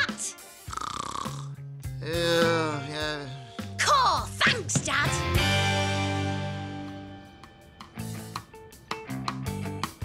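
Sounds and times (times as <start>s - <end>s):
background music: 0.0s - 10.0s
man snoring: 0.6s - 3.4s.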